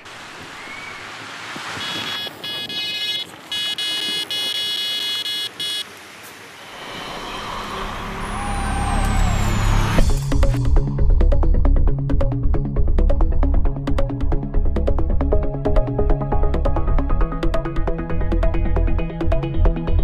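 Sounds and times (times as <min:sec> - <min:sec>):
electronic bite alarm tone: 0:01.8 - 0:05.9
music: 0:06.8 - 0:20.0.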